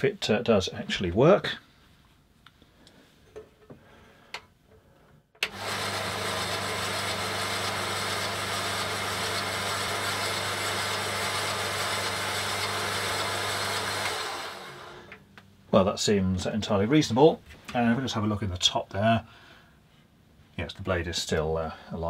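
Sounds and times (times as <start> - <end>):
bandsaw motor hum and blade whirr: 5.4 - 15.2.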